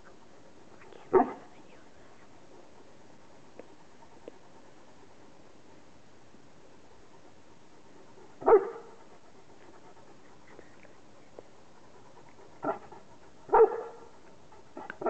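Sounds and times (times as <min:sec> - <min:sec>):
dog barking: 0:01.1 - 0:01.4, 0:08.4 - 0:09.0, 0:12.6 - 0:12.9, 0:13.5 - 0:14.1.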